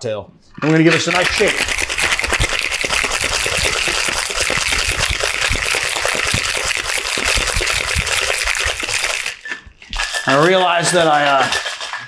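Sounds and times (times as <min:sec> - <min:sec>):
ice rattling in cocktail shaker: 0:00.6 - 0:12.0.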